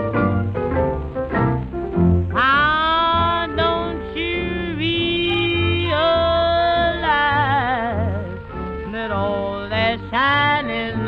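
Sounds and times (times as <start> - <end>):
bending lead melody: 0.0 - 11.0
plucked notes: 0.0 - 11.0
pulsing bass: 0.0 - 11.0.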